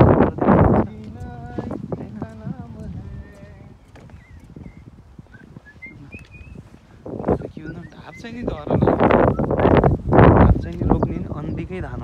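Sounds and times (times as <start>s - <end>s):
footsteps on wooden boardwalk: 0.1s - 11.0s.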